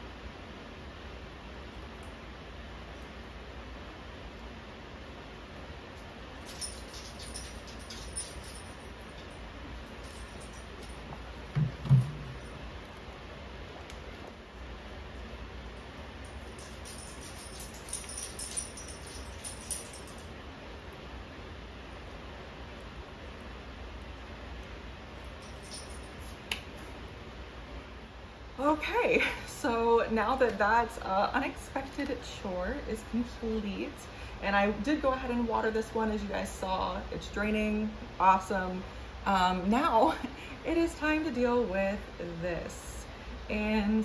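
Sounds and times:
low room hum: 0.0 - 44.0
plant pot thumps: 11.5 - 12.4.

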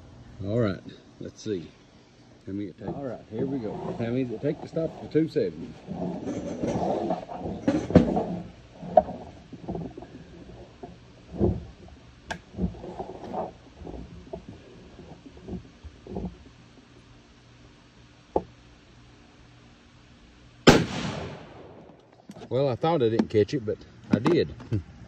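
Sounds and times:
rifle shot: 20.7 - 22.0.

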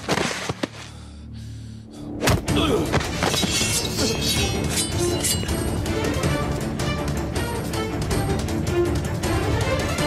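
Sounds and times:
dramatic orchestral music: 1.0 - 10.0.

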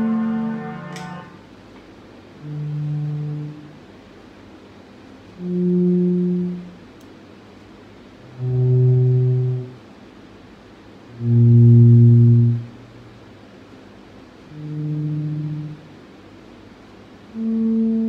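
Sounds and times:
electric bass guitar notes: 0.0 - 1.4.

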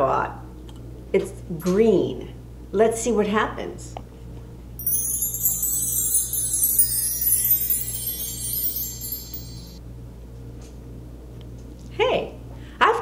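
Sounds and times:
wind chimes: 4.8 - 9.8.

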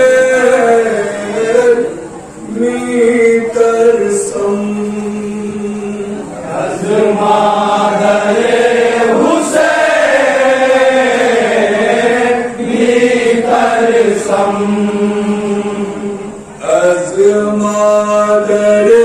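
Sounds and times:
men chanting a lament: 0.0 - 19.0.

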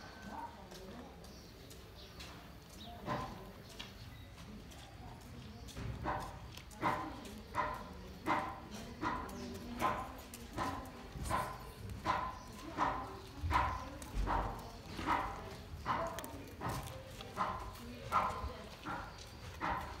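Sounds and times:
cat chewing dry kibble: 10.0 - 20.0.

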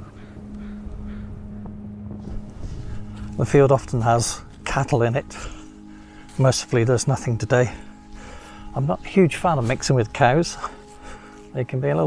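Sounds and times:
wind rumbling on microphone: 0.0 - 8.0
steady low hum: 0.0 - 11.6.

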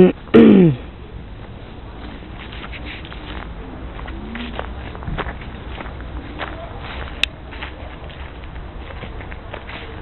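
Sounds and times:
steady low rumble: 0.0 - 10.0
footsteps walking: 1.3 - 10.0.

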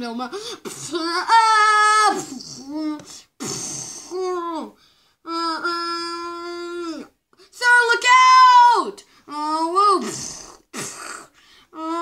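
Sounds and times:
raspberry blowing: 3.4 - 4.1, 10.0 - 11.3.

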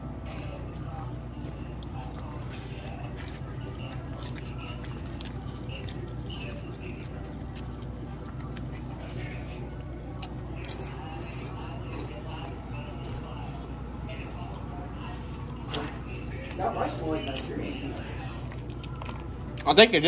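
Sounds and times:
chewing and crunching chips: 0.0 - 20.0.

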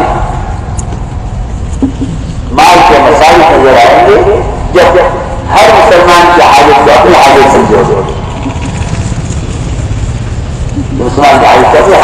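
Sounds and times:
low rumbling background noise: 0.0 - 12.0
man preaching: 2.5 - 8.2, 11.0 - 12.0.

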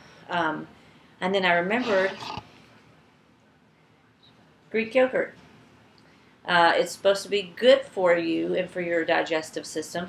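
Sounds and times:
woman speaking: 1.2 - 2.4.

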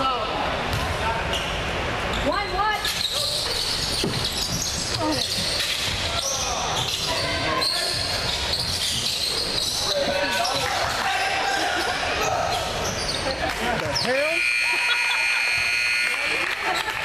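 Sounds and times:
sneakers squeaking: 0.7 - 14.6.

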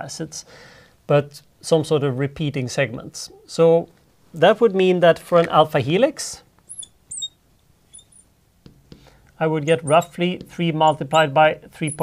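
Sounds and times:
marker squeaking on glass board: 6.6 - 12.0.

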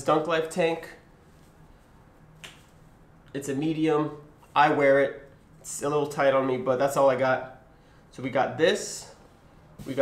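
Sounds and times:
faint steady hum: 0.0 - 10.0
short sharp snap: 2.4 - 2.8.

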